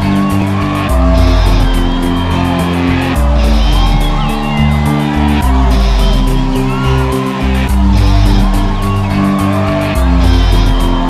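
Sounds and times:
loud rock music: 0:00.0 - 0:11.0.

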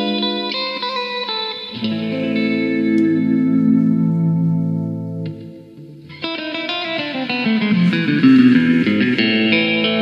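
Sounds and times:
electric guitar sustained chord: 0:00.0 - 0:10.0.

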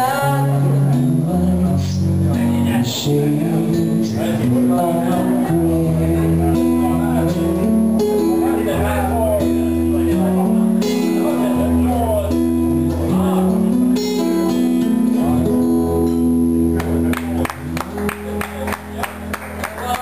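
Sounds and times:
person singing wordless line: 0:00.0 - 0:16.8
acoustic guitar strumming: 0:00.0 - 0:20.0.

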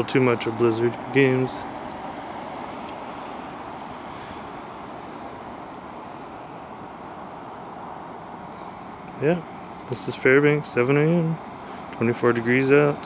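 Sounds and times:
distant road traffic: 0:00.0 - 0:13.0.

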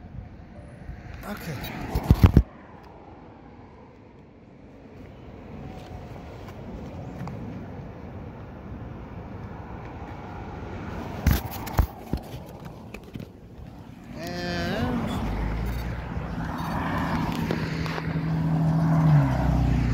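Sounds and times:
road traffic rushing: 0:00.0 - 0:19.9.

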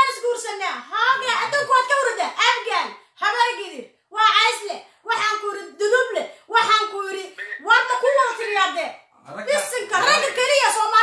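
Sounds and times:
high-pitched voice repeating phrase: 0:00.8 - 0:01.7.

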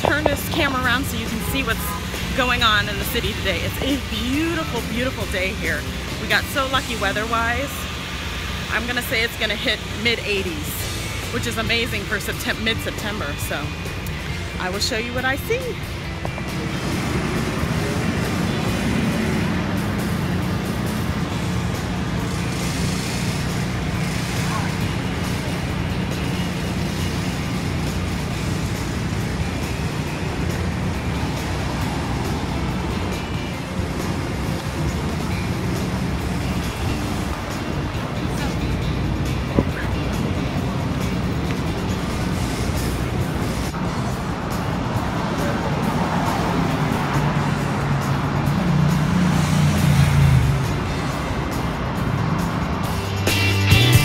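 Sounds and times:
car and bus traffic: 0:00.0 - 0:54.0
music: 0:00.0 - 0:54.0
voices: 0:00.0 - 0:54.0.

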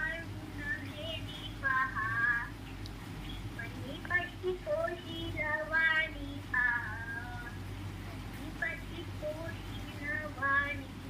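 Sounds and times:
boy singing: 0:03.6 - 0:07.5, 0:08.4 - 0:11.0.

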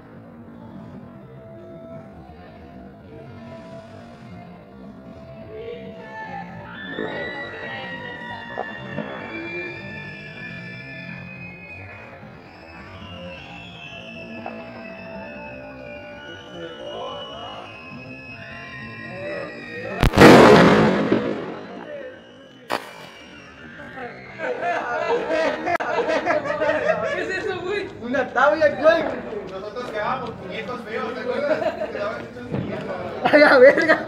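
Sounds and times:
background music: 0:00.0 - 0:21.8
firecracker bang: 0:19.9 - 0:23.4
small sharp crack: 0:22.7 - 0:23.2.

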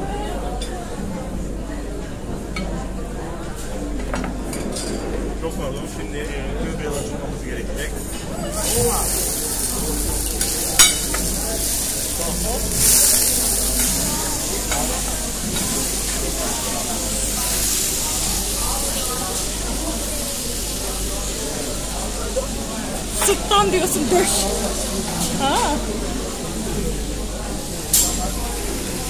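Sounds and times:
stock sizzling on hot plate: 0:08.5 - 0:23.1, 0:26.3 - 0:29.0.

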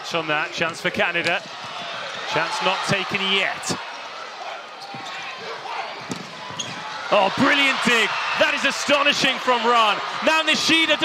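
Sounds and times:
arena crowd noise: 0:00.0 - 0:11.0.

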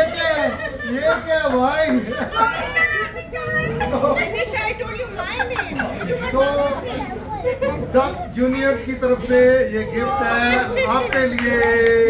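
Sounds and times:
overlapping party chatter: 0:00.0 - 0:12.0.

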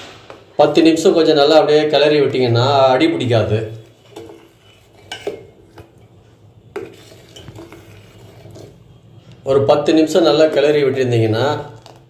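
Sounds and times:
ladle stirring porridge: 0:03.6 - 0:09.4
ladle clinking against pot: 0:04.0 - 0:06.1.

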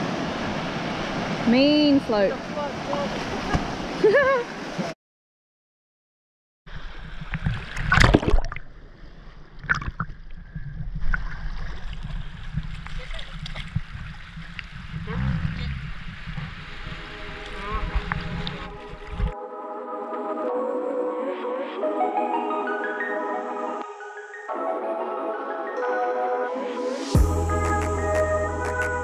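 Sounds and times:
sharp splashes or knocks: 0:07.4 - 0:08.7
seawater sloshing and splashing: 0:09.6 - 0:15.1
low microphone rumble: 0:10.3 - 0:19.4
music with pitched tune: 0:20.1 - 0:29.0.

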